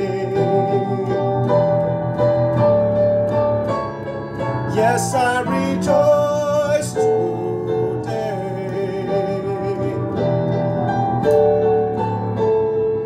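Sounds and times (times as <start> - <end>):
man singing worship song: 0.0 - 1.5, 4.7 - 10.4
piano accompaniment: 0.0 - 13.0.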